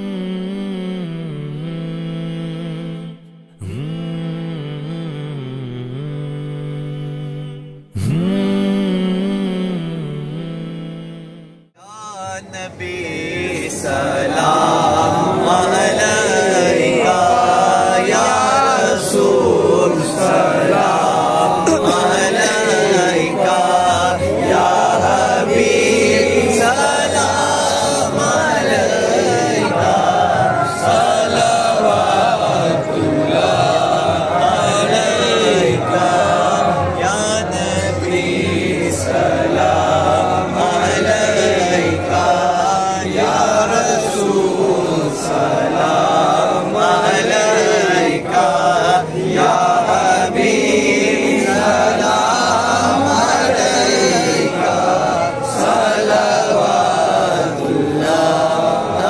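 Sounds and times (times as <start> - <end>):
men chanting together: 12.0 - 59.0.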